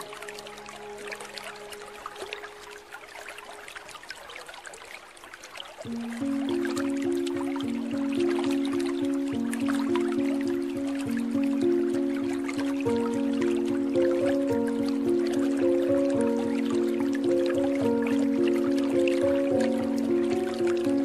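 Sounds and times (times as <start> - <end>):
soft relaxation music: 0.0 - 21.0
water dripping: 0.0 - 21.0.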